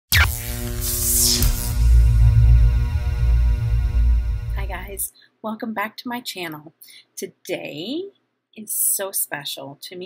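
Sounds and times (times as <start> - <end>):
cinematic hit: 0.1 - 5.0
deep throbbing bass: 0.1 - 5.0.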